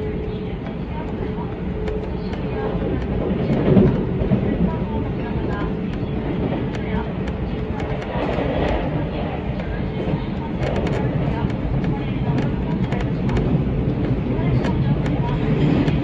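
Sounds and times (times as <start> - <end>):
faint rail clicks: 0.0 - 16.0
train rumble inside carriage: 0.0 - 16.0.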